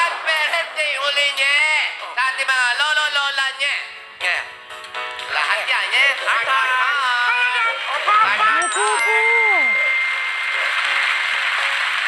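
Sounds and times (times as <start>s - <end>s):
high ringing ding: 8.6s - 10.7s
audience applauding: 10.3s - 12.0s.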